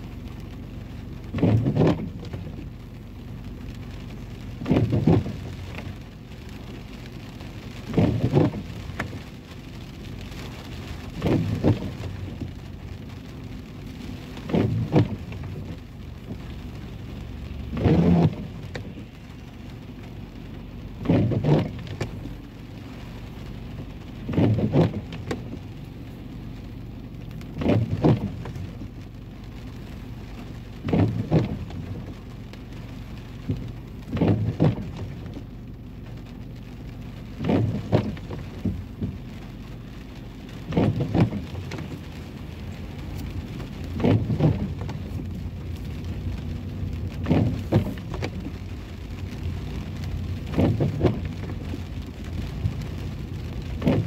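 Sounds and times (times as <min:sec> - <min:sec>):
rain pattering on car: 0:00.0 - 0:54.0
windshield wiper sweeping: 0:00.0 - 0:54.0.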